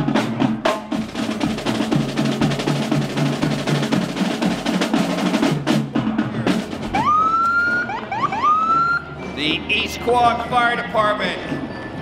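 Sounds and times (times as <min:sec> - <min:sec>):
marching drum hits: 0:00.0 - 0:07.1
fire engine siren wailing: 0:06.9 - 0:09.2.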